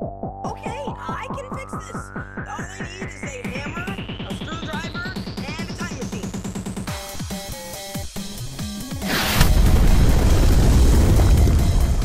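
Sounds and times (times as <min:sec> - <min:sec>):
hiss of projectile streaking in: 0:09.0 - 0:09.8
loud rumbling explosion: 0:09.1 - 0:12.0.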